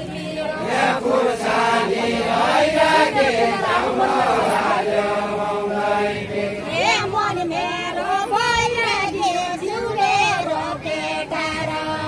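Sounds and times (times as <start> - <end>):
voices singing unaccompanied: 0.0 - 12.0.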